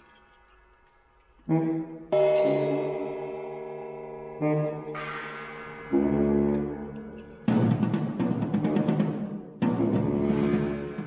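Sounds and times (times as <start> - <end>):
saxophone holding low notes: 1.5 - 7.5.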